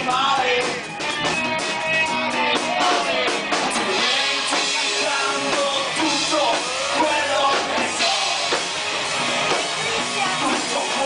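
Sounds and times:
live rock band playing: 0.0s - 11.0s
drum strikes: 0.1s - 11.0s.

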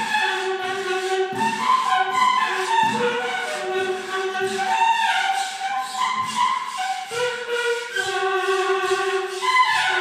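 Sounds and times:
wavering saxophone neck tones: 0.0s - 10.0s.

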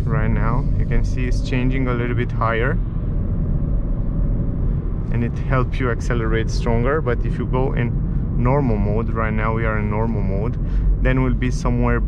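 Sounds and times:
engine and road noise in cabin: 0.0s - 12.0s.

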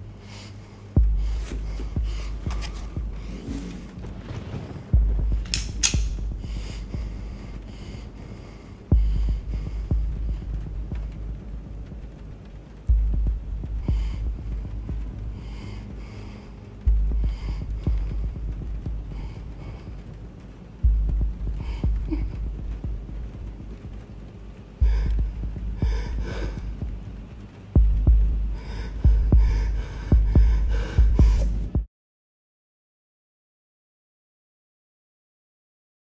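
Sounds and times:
low hum: 0.0s - 31.9s
deep low booms: 1.0s - 31.9s
sharp clicks: 5.4s - 6.4s.

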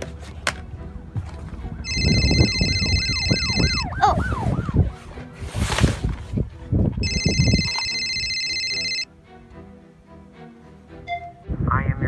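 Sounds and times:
steady high tone: 1.8s - 4.6s, 7.0s - 9.1s.

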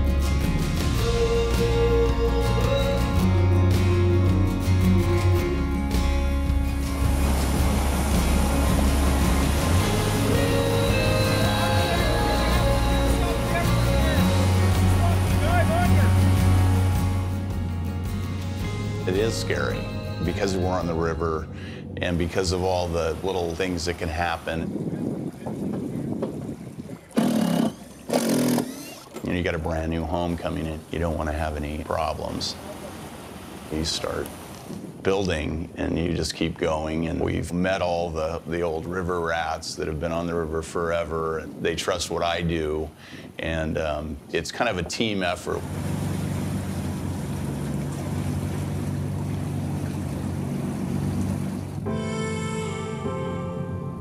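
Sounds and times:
music with sustained tones: 0.0s - 21.8s, 51.8s - 54.0s
river water: 0.0s - 35.4s, 36.4s - 52.2s
boat engine droning: 1.0s - 34.8s, 44.7s - 54.0s
river water rushing: 5.2s - 17.6s, 32.5s - 34.7s, 45.6s - 51.9s
wind: 5.4s - 18.2s, 20.6s - 51.9s
cordless drill driving screw: 27.2s - 29.2s.

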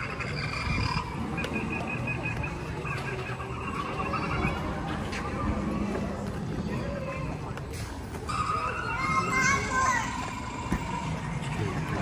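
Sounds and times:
children's voices in a crowd: 0.0s - 12.0s
child squealing: 8.5s - 10.4s.

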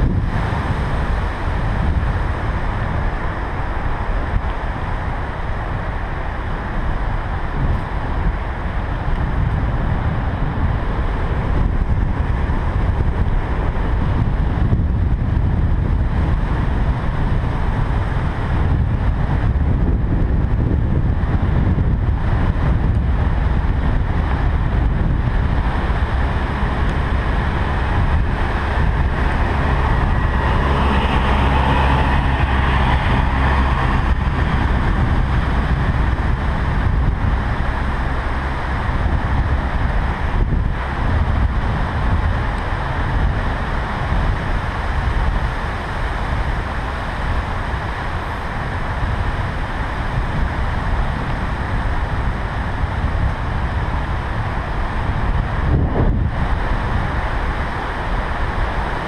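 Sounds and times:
wind on microphone: 0.0s - 59.0s.

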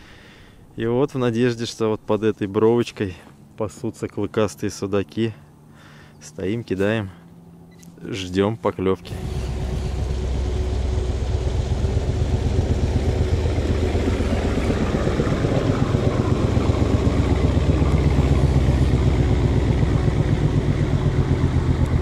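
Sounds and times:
boat engine running: 8.8s - 22.0s.

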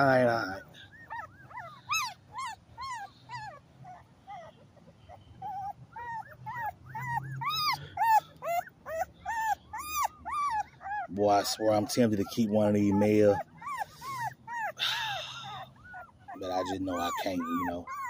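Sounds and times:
puppy whimpering: 0.0s - 18.0s.

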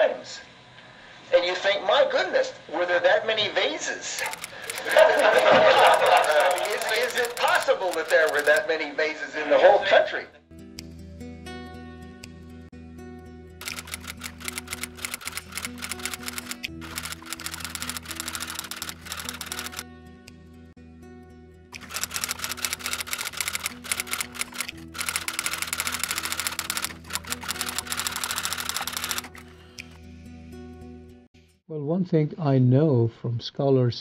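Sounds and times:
typewriter key clatter: 4.2s - 8.6s, 13.6s - 19.8s, 21.8s - 29.4s
low background music: 10.5s - 31.3s.

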